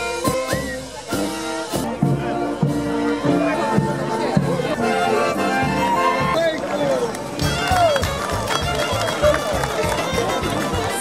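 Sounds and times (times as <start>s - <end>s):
bass drum and cymbal beats: 0.0s - 3.2s
brass band playing: 0.0s - 11.0s
crowd voices: 0.0s - 11.0s.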